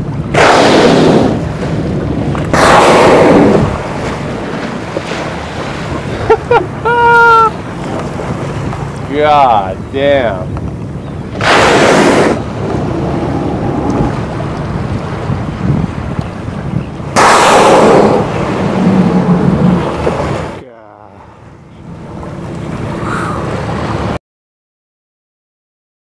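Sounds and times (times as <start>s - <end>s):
wind noise: 0.0s - 20.6s
water noise: 0.0s - 24.2s
whale blowing: 0.3s - 6.2s, 11.3s - 15.7s, 17.1s - 20.6s, 22.9s - 23.9s.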